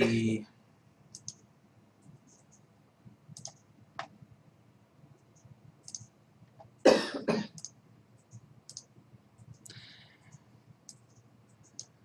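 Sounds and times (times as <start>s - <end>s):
computer mouse clicks: 1.1s - 2.7s, 3.3s - 4.2s, 5.2s - 6.8s, 7.5s - 12.0s
person coughing: 6.9s - 7.6s.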